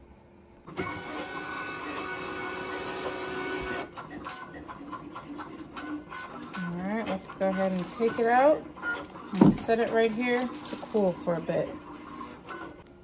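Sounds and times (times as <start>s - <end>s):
press motor running: 0.7s - 12.9s.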